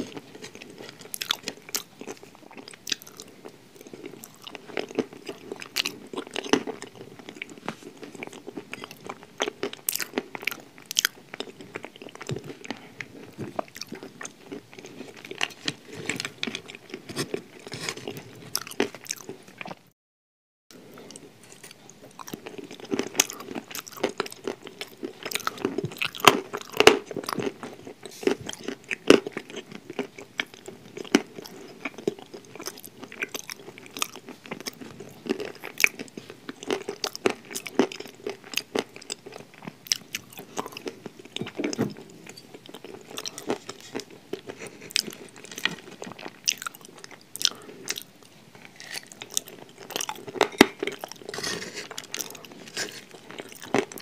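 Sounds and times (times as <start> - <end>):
chewing crunchy food: 0.0 - 19.9, 20.7 - 54.0.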